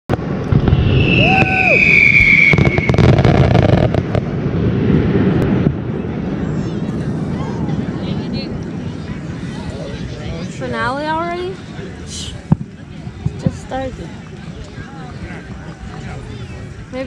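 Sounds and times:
fireworks crackling pops: 0.1 - 4.3, 12.2 - 13.6
firework falling whistle: 0.5 - 4.1
people talking: 5.8 - 17.0.

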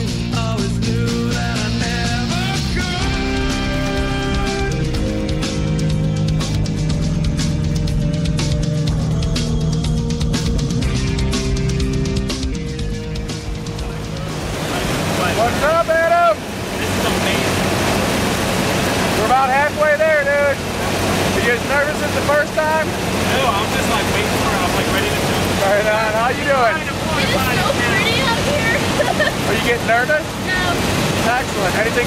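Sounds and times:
plane engine and airflow: 9.8 - 32.0.

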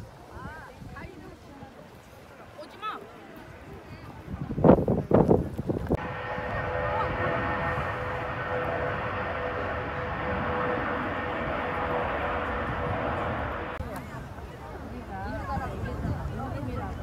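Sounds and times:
jet airliner takeoff roar: 6.0 - 13.9.

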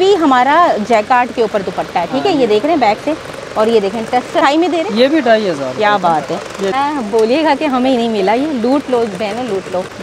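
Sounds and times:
woman talking: 0.0 - 10.0.

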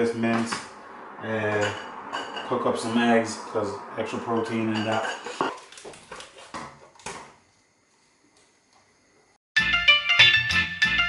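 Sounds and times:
cookware clattering on stove: 4.4 - 5.6.

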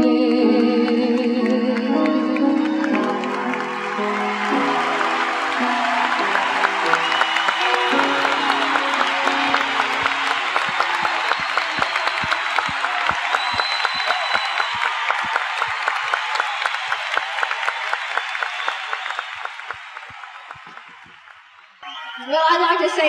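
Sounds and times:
audience clapping in rhythm: 0.5 - 21.9
whistle: 6.8 - 22.4.

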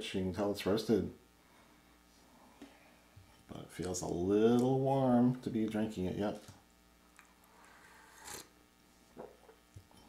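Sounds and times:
faint mouth sounds: 7.2 - 9.6
coffee slurp: 7.5 - 8.5.

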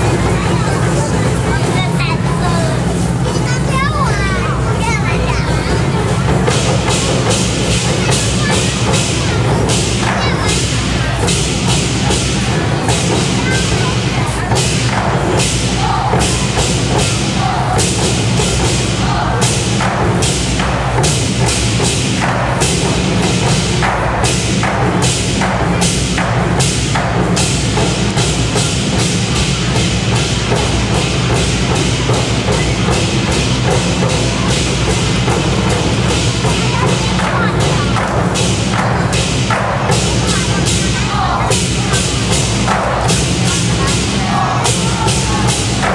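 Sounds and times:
barrel drums beating fast rhythm: 0.0 - 45.9.

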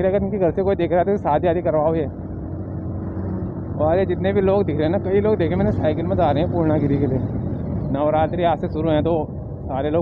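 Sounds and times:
motorcycle engine cruising: 0.0 - 10.0
road noise: 0.0 - 10.0
wind noise: 2.0 - 10.0.

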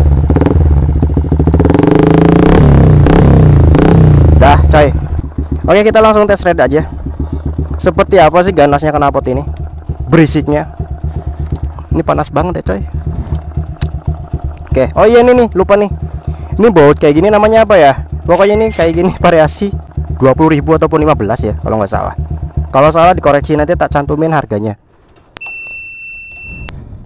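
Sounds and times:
motorcycle engine idling: 0.0 - 25.2
bright bell-like ding: 18.3 - 19.3, 25.4 - 26.7.

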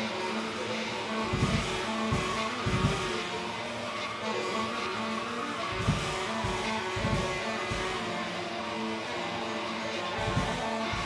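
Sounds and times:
drums: 0.0 - 11.0
saxophone: 0.0 - 11.0.

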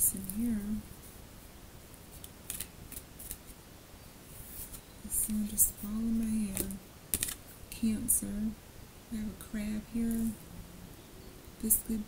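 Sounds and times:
cards ticking and snapping: 2.2 - 3.4, 6.6 - 7.4.

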